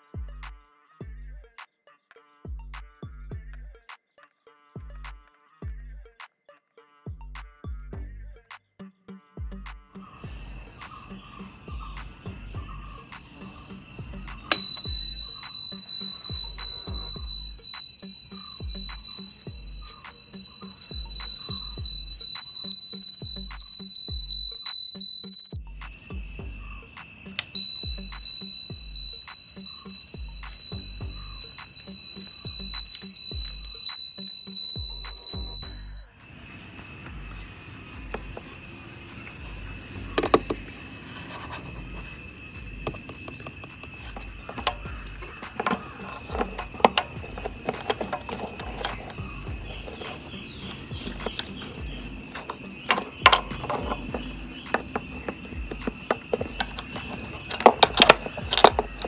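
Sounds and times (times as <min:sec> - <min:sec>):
background music with beat: 0:00.0 - 0:36.1, 0:39.4 - 0:40.8, 0:42.6 - 0:59.0
high-pitched indicator buzzer: 0:14.1 - 0:36.1, 0:37.1 - 0:59.0.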